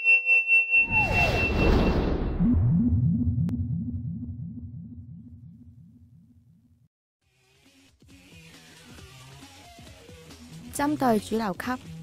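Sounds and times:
low synthesized pulse sweeps: 0.9 - 6.8.

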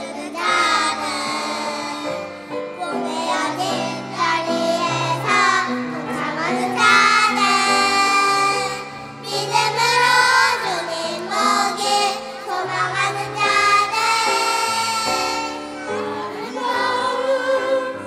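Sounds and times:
children and women singing: 0.0 - 18.0.

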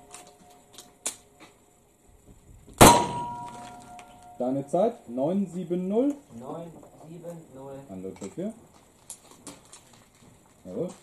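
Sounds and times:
revolver shot: 2.8 - 3.8
steel plate ringing: 2.8 - 4.7.

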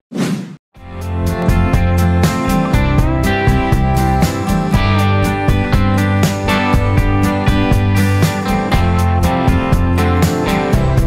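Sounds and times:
background music with steady beat: 0.8 - 11.0.

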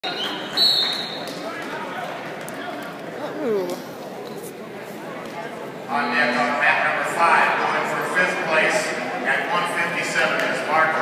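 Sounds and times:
sharp whistle blast: 0.0 - 1.2
crowd chatter: 0.0 - 11.0.

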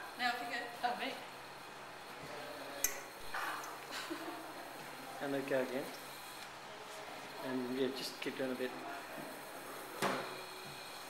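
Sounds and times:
faint voices: 1.9 - 11.0.

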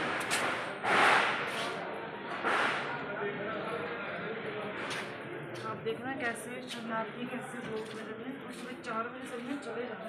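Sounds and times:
rushing noise on microphone: 0.0 - 3.0.

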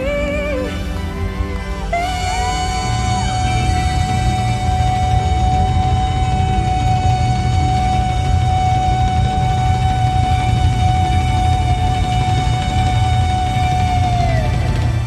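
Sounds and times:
held sung note: 0.0 - 14.9
heavy low rumble of band: 0.0 - 15.0.

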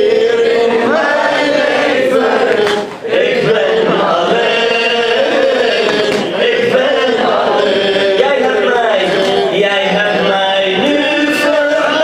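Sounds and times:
man chanting into microphone: 2.6 - 12.0.

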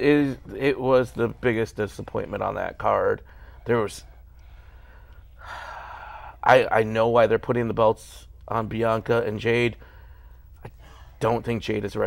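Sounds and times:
faint low room hum: 0.0 - 12.0
man breathing in: 3.2 - 3.6, 4.4 - 6.4, 9.8 - 11.2.

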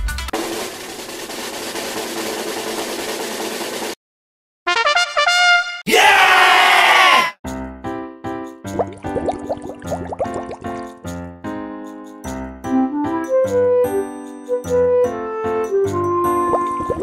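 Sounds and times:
drum roll rattle: 0.0 - 4.0.

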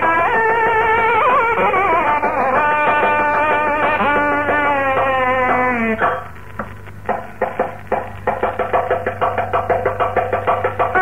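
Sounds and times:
low steady hum: 0.0 - 11.0
drum playing ringing strokes: 0.6 - 11.0.

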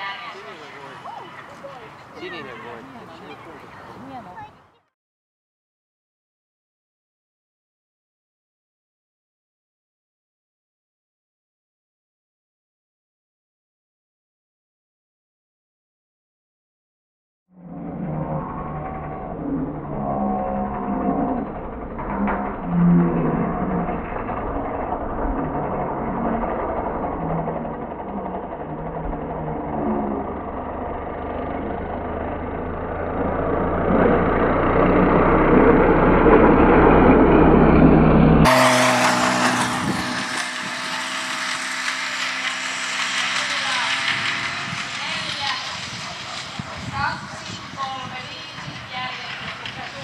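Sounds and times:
voices: 0.0 - 4.9, 43.0 - 50.0.

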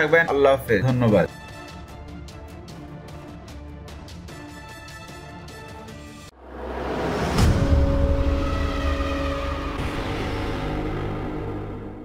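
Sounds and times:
impact hit: 6.4 - 11.5.

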